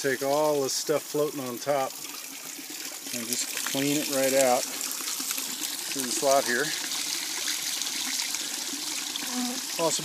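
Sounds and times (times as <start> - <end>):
water pouring and splashing: 0.0 - 10.0.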